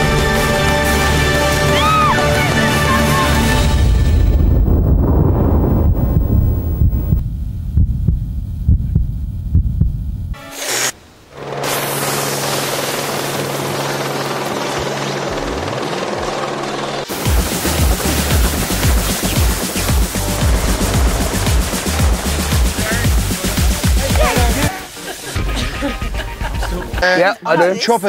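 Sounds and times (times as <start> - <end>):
music with heavy low beat: 2.5 - 10.4, 17.1 - 24.7
helicopter rotor and engine: 11.4 - 18.0.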